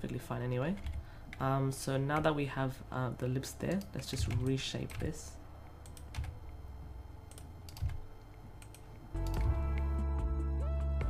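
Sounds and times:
background music with sustained notes: 0:05.7 - 0:11.0.

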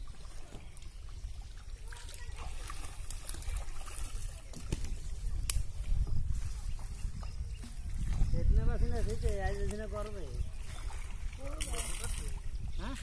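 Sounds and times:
water sloshing and splashing: 0:00.0 - 0:13.0.

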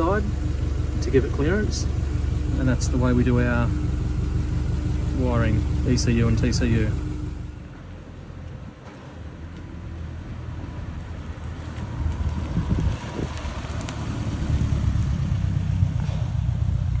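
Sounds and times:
van engine rumble pulling away: 0:00.0 - 0:08.0, 0:12.8 - 0:17.0.

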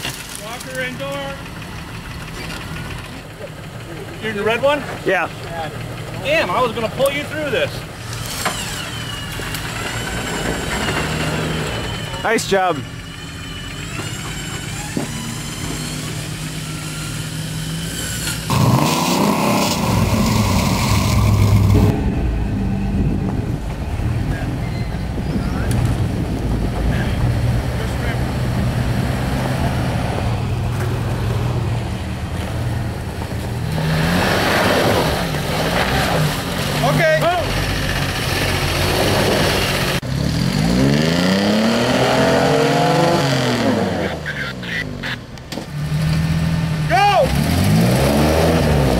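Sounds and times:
off-road engines running: 0:00.0 - 0:48.9
engine revving: 0:00.4 - 0:48.9.

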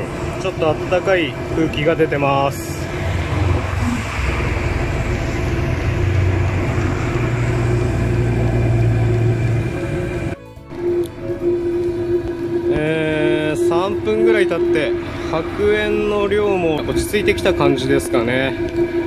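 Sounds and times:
blower rushing: 0:00.0 - 0:19.0
constant whine: 0:00.0 - 0:19.0
heater exhaust rumble: 0:00.0 - 0:19.0.

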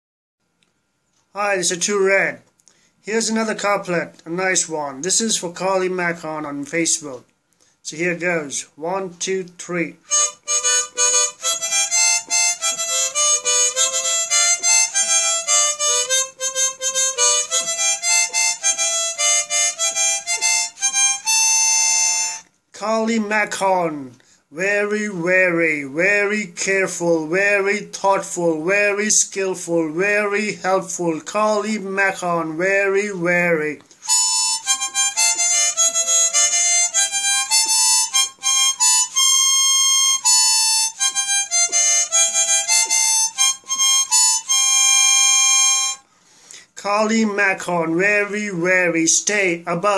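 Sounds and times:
harmonica melody: 0:09.9 - 0:22.6, 0:34.0 - 0:46.6.

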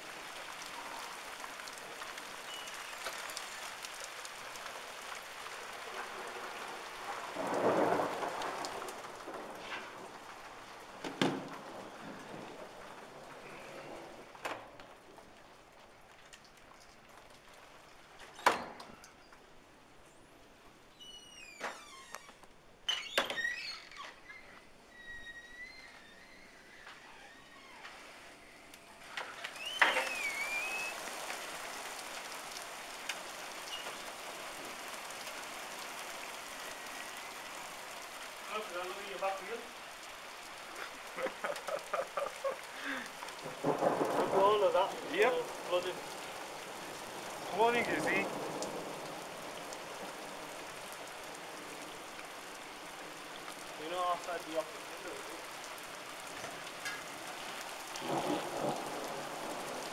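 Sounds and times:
hail and rain on paving: 0:00.0 - 0:19.7, 0:21.6 - 0:59.9
door latch clicks and squeaks: 0:18.3 - 0:19.2, 0:21.0 - 0:27.9, 0:29.4 - 0:30.5.

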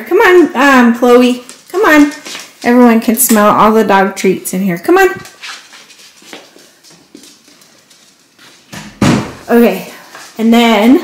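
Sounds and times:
shuffling and handling noise: 0:01.3 - 0:03.5, 0:05.2 - 0:08.8, 0:09.4 - 0:10.9.

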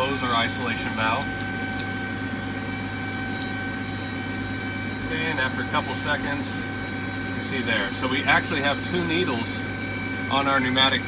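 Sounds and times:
ground equipment hum and whine: 0:00.0 - 0:11.0.

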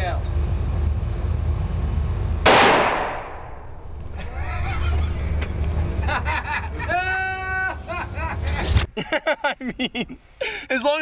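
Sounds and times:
revolver shot echoing indoors: 0:02.5 - 0:04.1.

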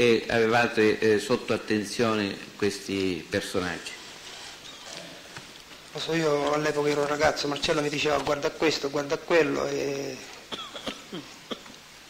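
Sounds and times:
man's voice: 0:00.0 - 0:03.9, 0:06.0 - 0:10.4
faint throat clearing: 0:10.5 - 0:11.8.

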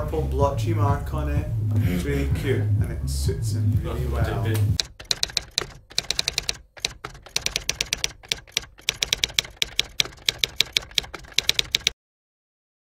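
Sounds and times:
typewriter keystrokes clacking: 0:04.8 - 0:12.0.

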